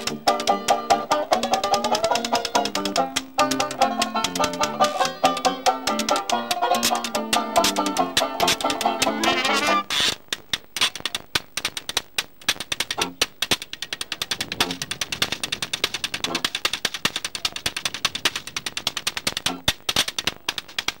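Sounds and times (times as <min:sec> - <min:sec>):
washboard scraped rhythmically: 0:00.0 - 0:10.2.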